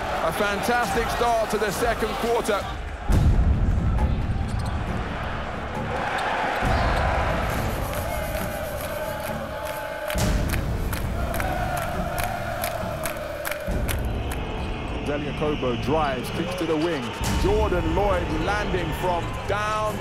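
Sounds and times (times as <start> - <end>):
background music: 0.0 - 20.0
crowd cheering and chanting: 0.0 - 20.0
sharp claps: 7.8 - 14.5.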